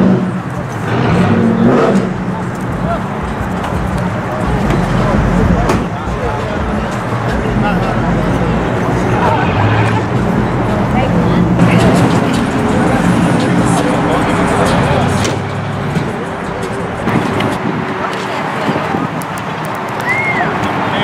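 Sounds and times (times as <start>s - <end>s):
car engine running: 0.0s - 19.6s
people talking: 0.0s - 21.0s.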